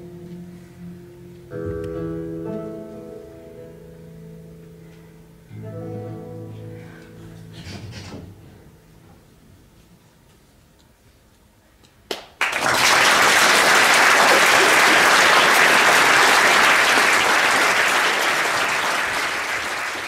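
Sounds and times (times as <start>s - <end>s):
audience applauding: 12.1s - 20.0s.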